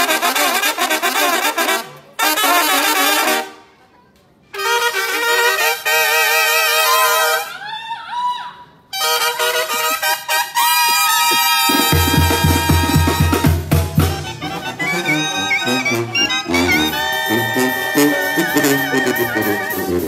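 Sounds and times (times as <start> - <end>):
brass band playing: 0.0 - 3.7, 4.5 - 7.5, 8.9 - 20.0.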